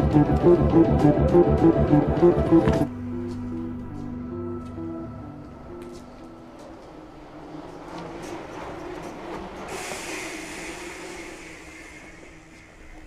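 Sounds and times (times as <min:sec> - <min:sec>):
bicycle rolling past: 0:02.8 - 0:11.2.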